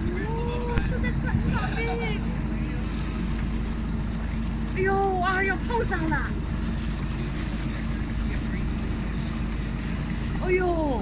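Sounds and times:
boat engine humming: 0:00.0 - 0:11.0
water wash from surfacing whale: 0:00.0 - 0:11.0.

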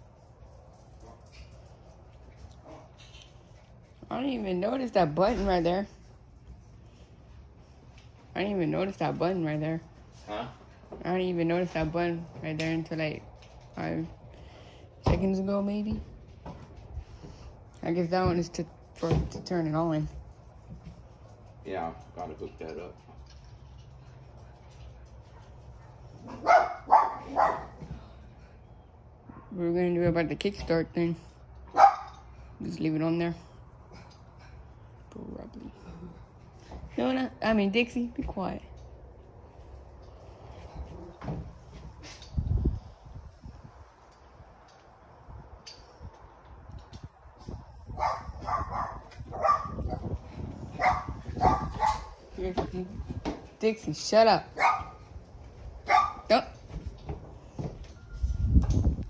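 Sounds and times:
dog barking: 0:25.8 - 0:27.8, 0:31.7 - 0:32.2, 0:48.0 - 0:50.0, 0:50.8 - 0:52.1, 0:54.6 - 0:55.0, 0:55.9 - 0:56.3.

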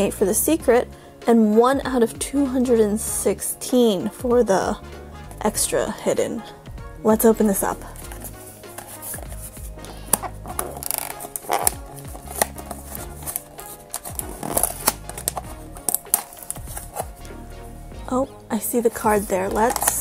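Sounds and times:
background music with beat: 0:00.0 - 0:20.0
cardboard box tearing open: 0:10.1 - 0:17.1.

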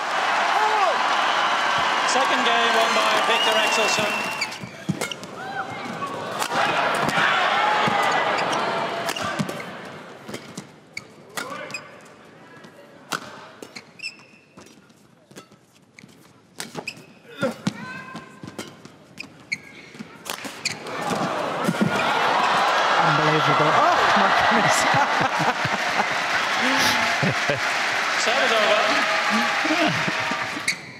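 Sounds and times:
crowd noise: 0:00.0 - 0:10.9, 0:19.8 - 0:30.9
shoes squeaking on court: 0:10.3 - 0:12.0, 0:13.6 - 0:17.3, 0:18.1 - 0:20.9.

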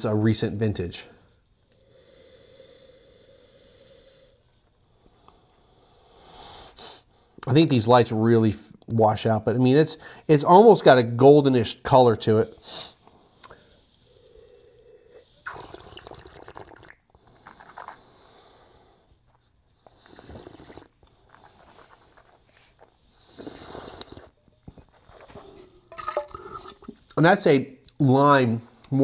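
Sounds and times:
person slurping wine: 0:14.2 - 0:18.0, 0:19.9 - 0:27.2.

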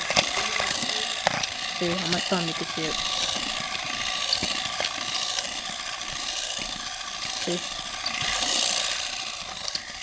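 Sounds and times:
toy motor whirring rattle: 0:00.0 - 0:10.0.

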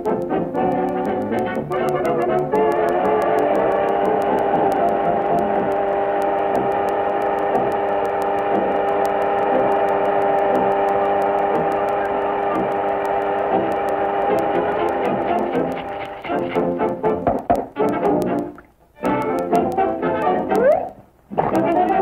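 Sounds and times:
electric fan whirring: 0:00.0 - 0:22.0.

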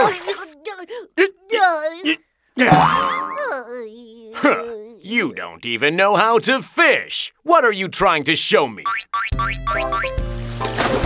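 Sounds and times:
cartoon boing effect: 0:02.6 - 0:03.6.

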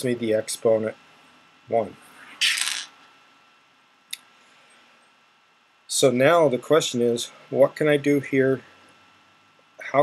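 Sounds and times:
pebbles clicking and rattling: 0:02.4 - 0:02.9.

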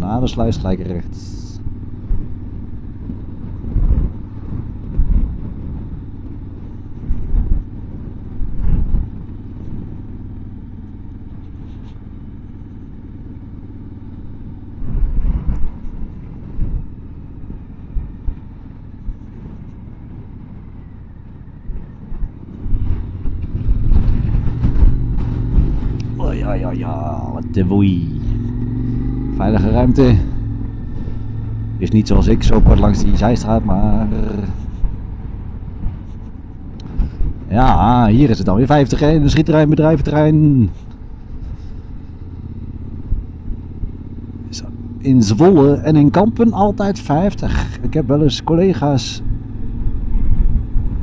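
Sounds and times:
motorcycle engine running: 0:00.0 - 0:51.0
wind rumbling on microphone: 0:00.0 - 0:51.0.

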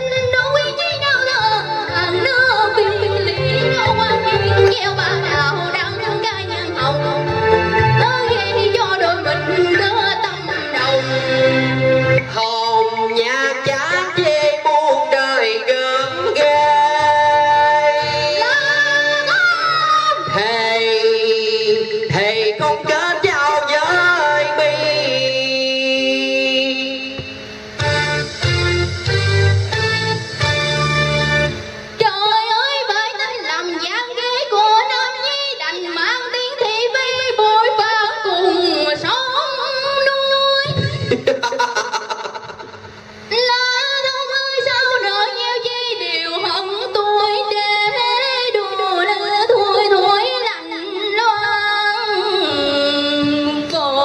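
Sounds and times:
woman singing into a microphone: 0:00.0 - 0:11.6, 0:12.2 - 0:27.2, 0:32.0 - 0:42.6, 0:43.3 - 0:54.0
instrumental accompaniment with bass: 0:00.0 - 0:32.1.

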